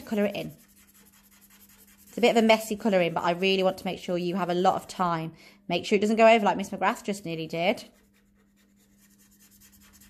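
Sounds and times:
felt-tip pen scratching on paper: 0:00.0 - 0:03.8, 0:07.5 - 0:10.0.

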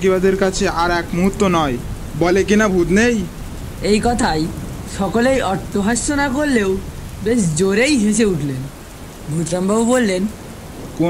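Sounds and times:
steady rain: 0:00.0 - 0:11.0.

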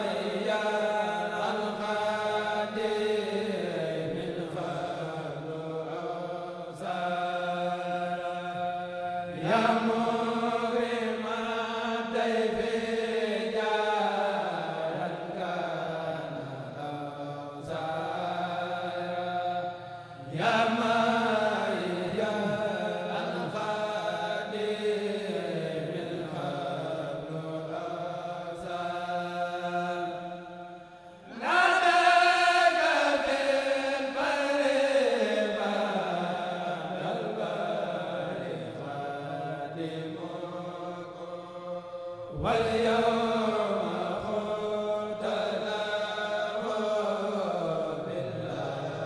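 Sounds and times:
men chanting through microphones: 0:00.0 - 0:49.0.

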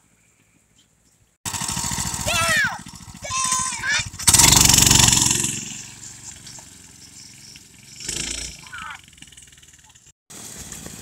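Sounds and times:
go-kart engine running: 0:01.5 - 0:11.0.

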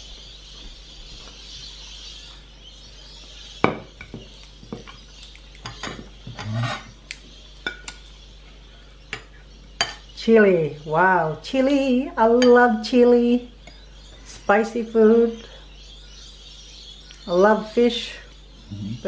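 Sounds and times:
spoon and plates clinking: 0:05.6 - 0:06.9, 0:07.6 - 0:08.1, 0:09.1 - 0:10.0.

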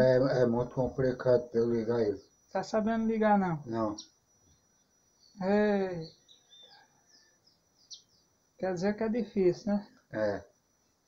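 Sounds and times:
man speaking: 0:00.0 - 0:02.2, 0:03.6 - 0:04.0, 0:10.1 - 0:10.5
faint bird chirps: 0:00.0 - 0:11.0.

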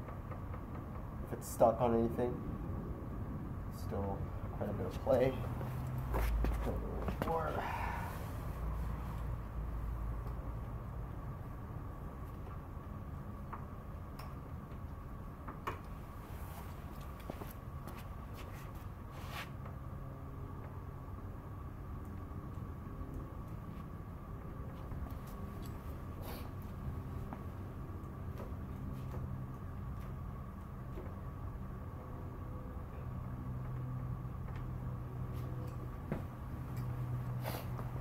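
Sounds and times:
faint steady whine: 0:00.0 - 0:38.0
low room hum: 0:00.0 - 0:38.0.

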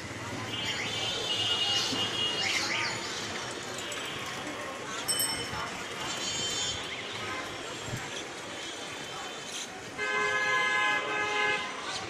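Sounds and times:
street background noise: 0:00.0 - 0:12.0.

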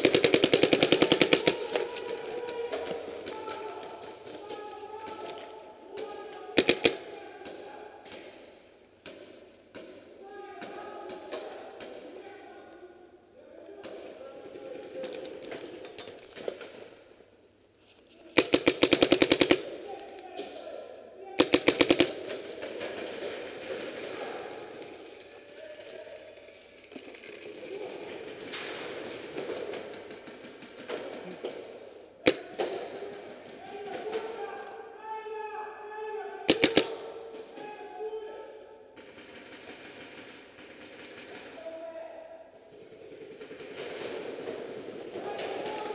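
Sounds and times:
paintball marker shots: 0:36.5 - 0:37.2.

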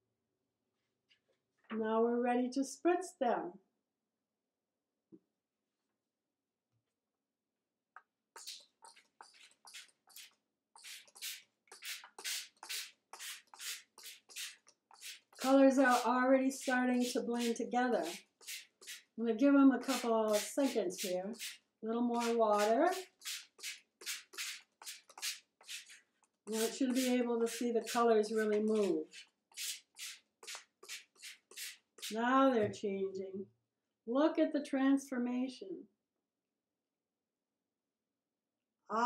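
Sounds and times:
spray bottle squirting water: 0:08.4 - 0:19.2, 0:19.8 - 0:32.2.

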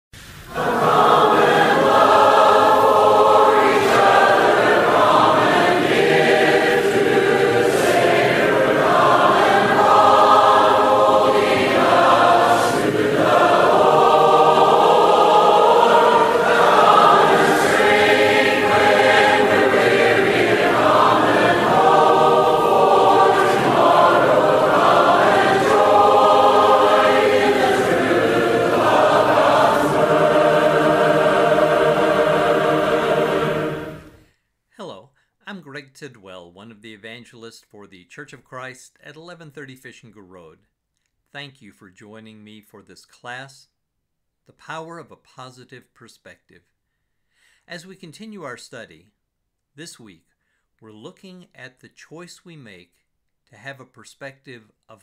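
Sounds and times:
choir singing: 0:00.5 - 0:34.2.

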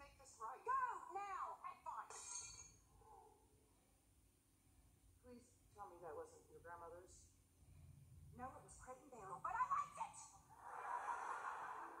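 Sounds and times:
studio audience laughing: 0:10.6 - 0:12.0.

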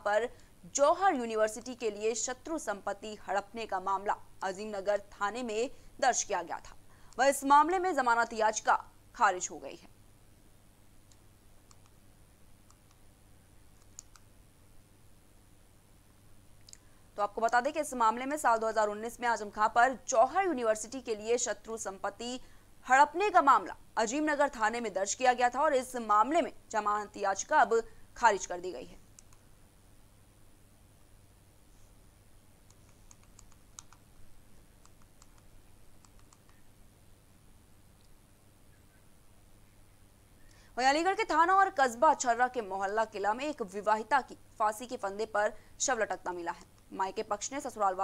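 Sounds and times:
low steady hum: 0:00.0 - 0:48.0
faint light clicks: 0:11.0 - 0:12.0, 0:13.8 - 0:14.3
short clicks: 0:13.8 - 0:14.3.

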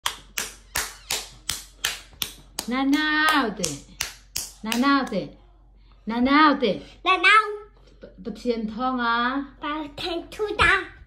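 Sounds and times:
hands clapping: 0:00.0 - 0:04.9.

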